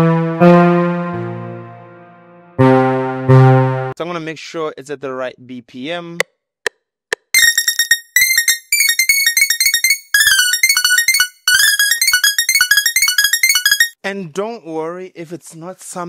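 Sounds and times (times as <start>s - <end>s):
synthesizer melody: 0.0s - 4.0s, 7.4s - 14.0s.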